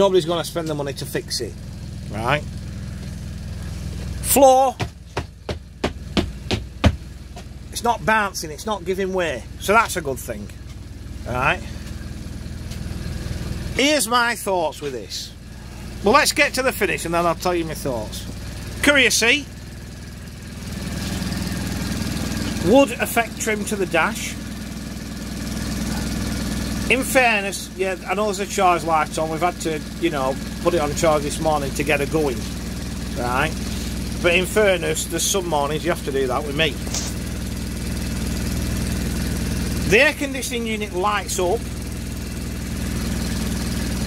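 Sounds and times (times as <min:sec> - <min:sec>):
diesel engine idling: 0:00.0 - 0:44.0.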